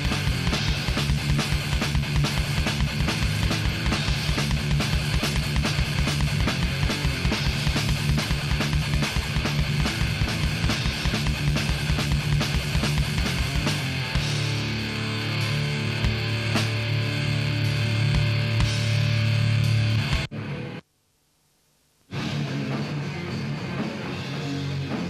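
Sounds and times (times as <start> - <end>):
fast kick drum beat: 0.0 - 14.4
death metal band playing live: 0.0 - 20.6, 22.1 - 25.0
heavily distorted guitars: 0.0 - 20.8, 22.1 - 25.0.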